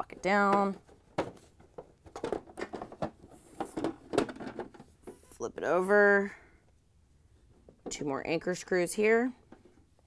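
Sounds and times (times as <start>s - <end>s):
plastic bin clicks and knocks: 0.2s - 4.9s.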